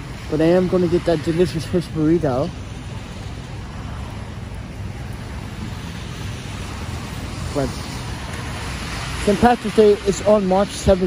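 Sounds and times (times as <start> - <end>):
traffic on wet streets: 0.0 - 11.0.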